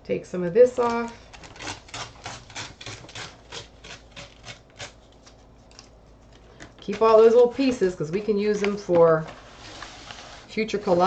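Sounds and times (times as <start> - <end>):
paper tearing: 1.4 - 5.9.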